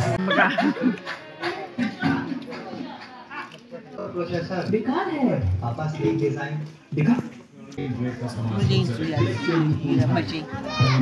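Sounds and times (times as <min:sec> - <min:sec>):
background music: 0:08.0 - 0:11.0
children's voices: 0:09.2 - 0:09.8, 0:10.4 - 0:11.0.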